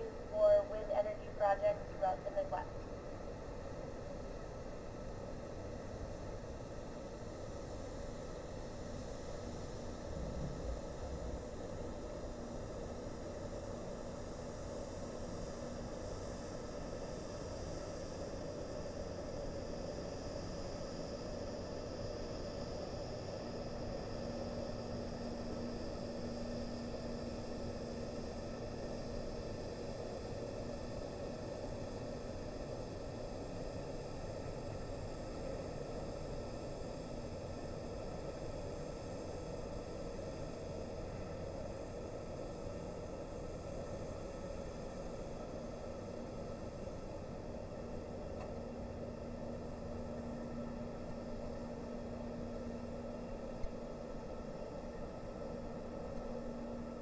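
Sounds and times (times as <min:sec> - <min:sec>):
faint steady tones: 0:00.0 - 0:57.0
steady hum and hiss: 0:00.0 - 0:57.0.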